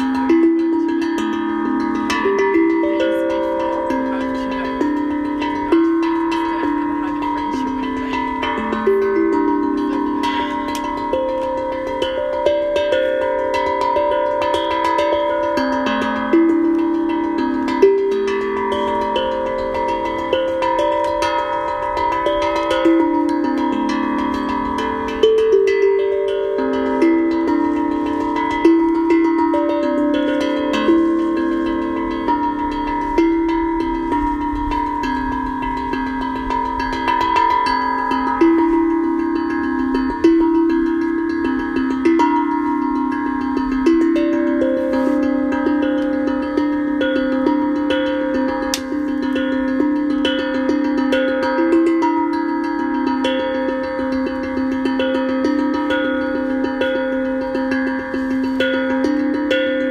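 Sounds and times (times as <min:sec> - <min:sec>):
steel tongue drum notes: 0:00.0 - 0:59.9.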